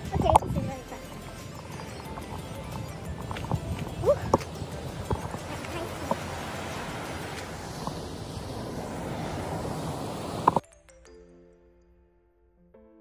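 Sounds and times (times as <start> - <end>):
footsteps on sandy path: 0.0 - 10.6
steady rushing background: 0.0 - 10.6
soft background music: 0.0 - 13.0.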